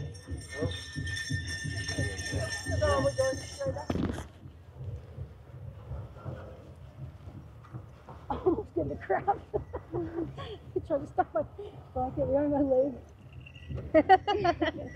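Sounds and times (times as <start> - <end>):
steady high ringing: 0.0 - 4.9, 8.4 - 14.9.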